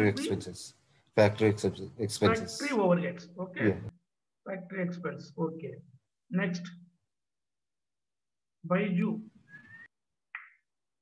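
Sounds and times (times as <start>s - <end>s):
person speaking over video call: 0.0s - 6.9s
faint whistle-like tone: 9.4s - 10.0s.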